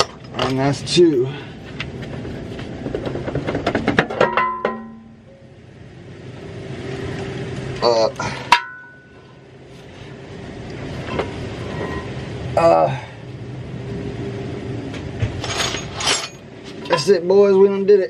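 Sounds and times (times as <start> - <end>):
metallic clanks and rattles: 0.0 - 5.2, 8.4 - 9.2, 15.0 - 17.2
sharp ringing metal clank: 4.2 - 5.6, 8.4 - 9.3.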